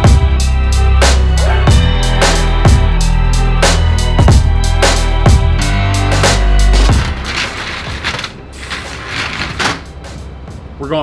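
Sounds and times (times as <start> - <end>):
sliding screen door scraping on track: 6.7 - 9.9.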